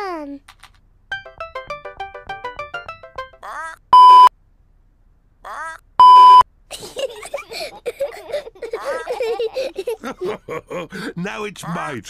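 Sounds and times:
cartoon voice laughing and babbling: 3.4s - 3.9s, 5.4s - 5.9s, 8.1s - 9.7s, 11.4s - 12.0s
pure tone bleeps: 4.0s - 4.3s, 6.0s - 6.4s.

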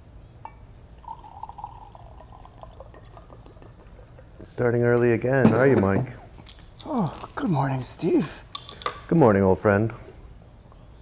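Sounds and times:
liquid pouring into glass: 0.4s - 4.7s.

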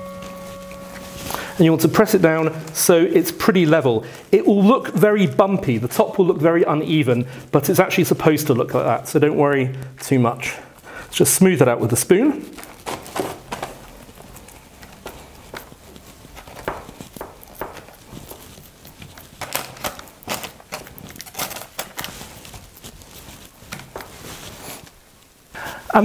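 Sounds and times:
spoon scraping sticky mixture: 0.2s - 25.0s.

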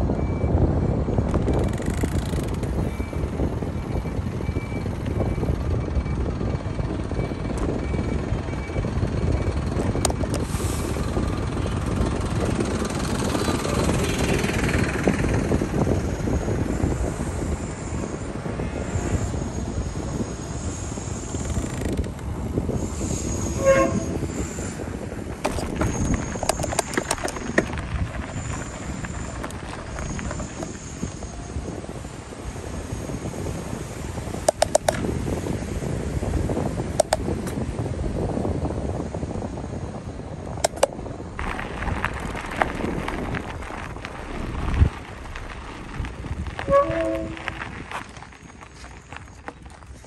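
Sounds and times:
wind buffeting microphone: 0.0s - 50.0s
brief pitched tone: 46.6s - 47.6s.

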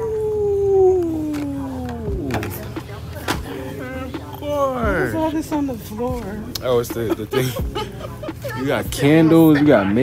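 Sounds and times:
man falsetto howl: 0.0s - 2.0s.

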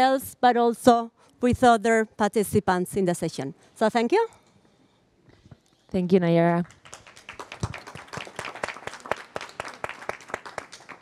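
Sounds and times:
audience applauding: 6.7s - 11.0s.

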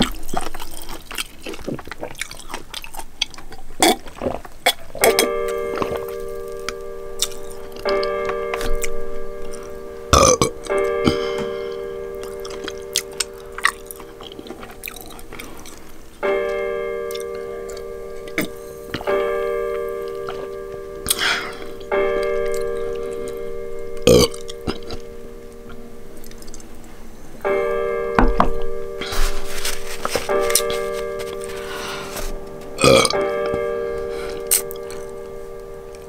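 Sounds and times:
bell-like music tones: 4.9s - 36.0s
loud burp: 10.1s - 11.2s, 24.0s - 25.0s, 32.8s - 33.2s
bell-like chime: 16.2s - 26.3s.

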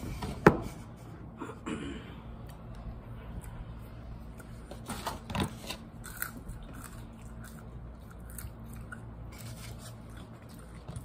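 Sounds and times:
chewing and biting food: 4.2s - 11.0s.

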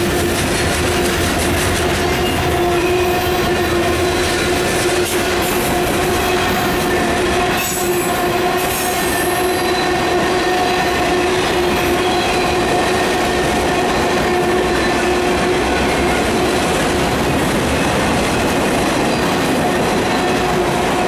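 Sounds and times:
freight train wheels on rails: 0.0s - 21.0s.

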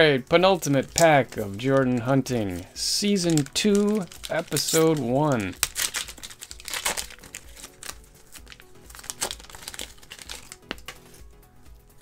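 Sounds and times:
plastic wrapper crackling: 0.5s - 11.3s
plastic wrapper tearing: 0.6s - 11.3s.

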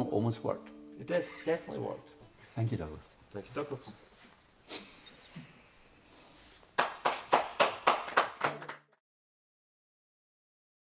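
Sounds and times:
hand claps: 6.7s - 9.0s.

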